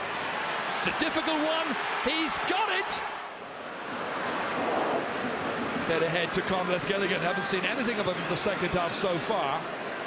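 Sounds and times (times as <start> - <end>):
stadium crowd roar: 0.0 - 10.0.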